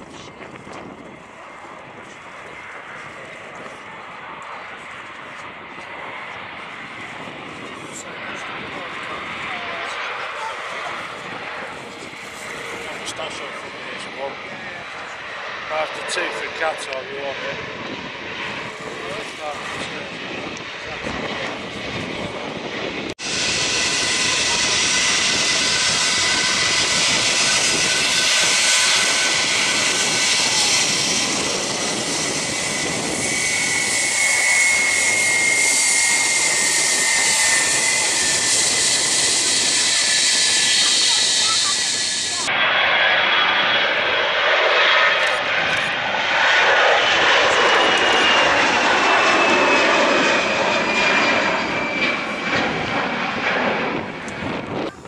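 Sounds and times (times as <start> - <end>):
jet airliner climbing away: 0.0 - 55.0
jet engines roaring with whine: 0.0 - 55.0.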